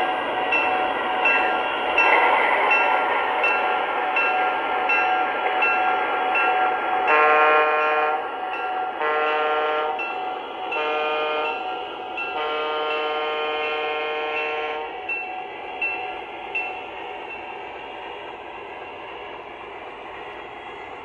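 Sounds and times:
model locomotive bell ringing: 0.0s - 17.7s
locomotive horn blasts: 7.0s - 8.3s, 9.0s - 10.1s, 10.7s - 11.7s, 12.3s - 15.0s.

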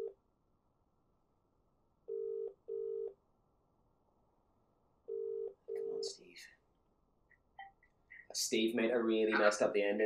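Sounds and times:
telephone ringing tone: 2.1s - 3.2s, 5.1s - 6.1s.

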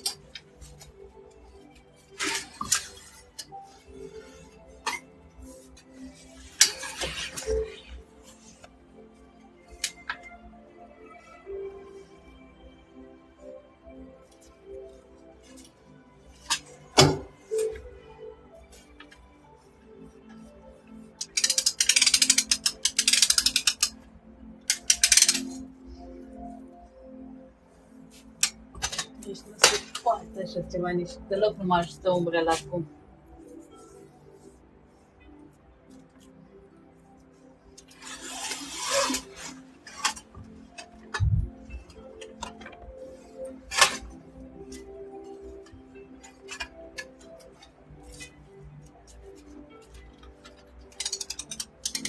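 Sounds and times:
faint background music: 0.0s - 52.0s
mechanical ratcheting clicks: 21.2s - 24.0s, 24.7s - 25.6s, 50.9s - 52.0s.

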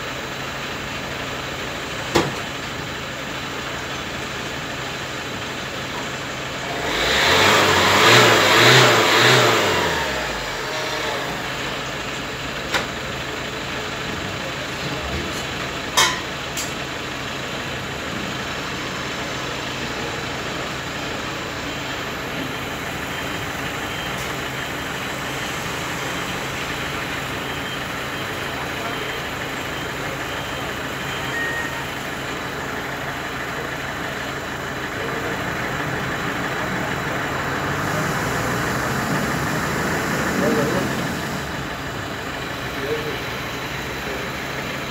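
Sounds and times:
van engine revving and idling: 0.0s - 44.9s.

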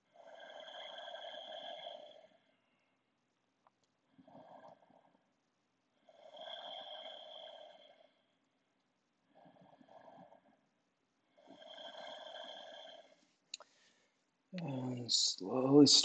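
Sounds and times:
person breathing slowly: 0.1s - 3.0s, 11.4s - 14.2s.

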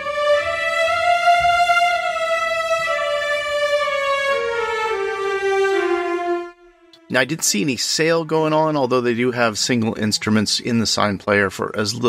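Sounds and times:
violins playing slow legato melody: 0.0s - 8.8s.

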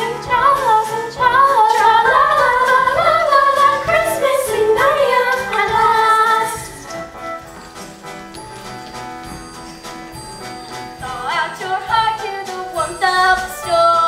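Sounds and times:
voices singing: 0.0s - 7.0s
musical accompaniment: 0.0s - 14.0s.

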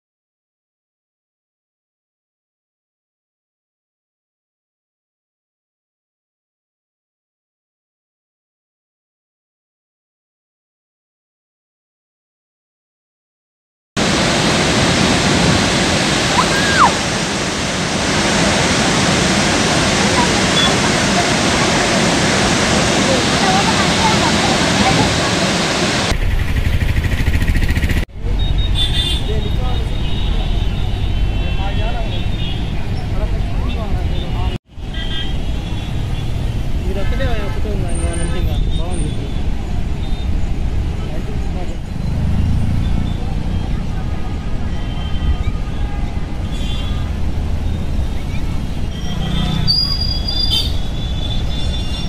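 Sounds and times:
water roaring through spillway: 14.0s - 26.2s
people talking: 16.2s - 17.0s, 19.7s - 26.1s, 28.2s - 34.6s, 36.8s - 39.5s, 40.9s - 41.9s, 43.1s - 44.8s
vehicles running: 18.4s - 34.5s, 35.8s - 45.4s, 46.2s - 52.0s
car horns: 28.4s - 32.9s, 34.1s - 36.4s, 44.2s - 47.1s, 48.9s - 52.0s.

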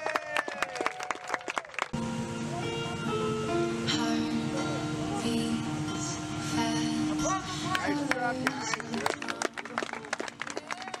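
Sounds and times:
guests clapping and cheering: 0.0s - 2.0s, 7.7s - 11.0s
recessional music: 1.9s - 11.0s.

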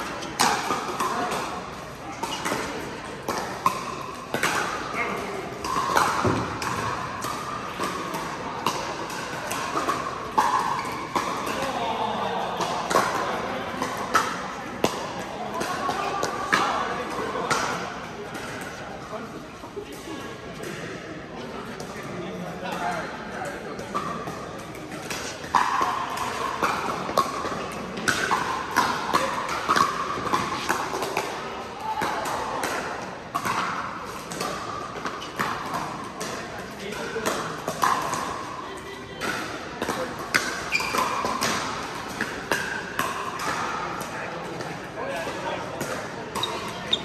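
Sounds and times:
paddles striking balls: 0.0s - 11.8s, 23.6s - 38.5s, 39.2s - 47.0s
chatter of players: 0.0s - 47.0s.

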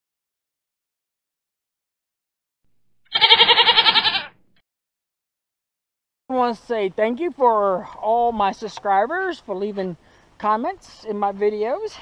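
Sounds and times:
quavering animal call: 3.1s - 4.4s.

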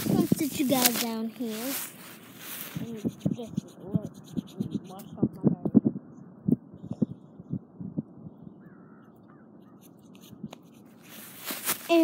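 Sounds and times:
hands rubbing dry rustle: 0.0s - 5.1s, 9.8s - 12.0s.

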